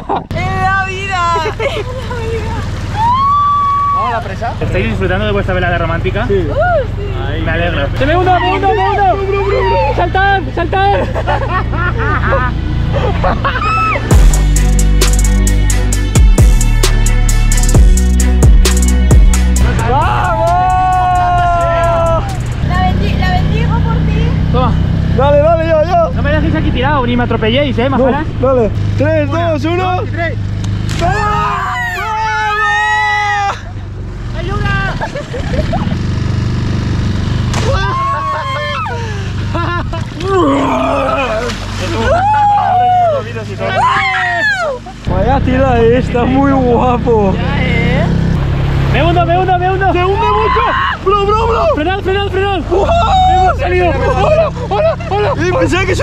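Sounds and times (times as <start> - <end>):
outboard motor running: 0.0 - 56.0
long drawn-out shout: 2.9 - 4.3, 8.2 - 10.2, 13.6 - 14.1, 19.7 - 22.6, 31.0 - 33.8, 37.6 - 39.4, 40.2 - 45.1, 50.1 - 51.8, 52.7 - 55.4.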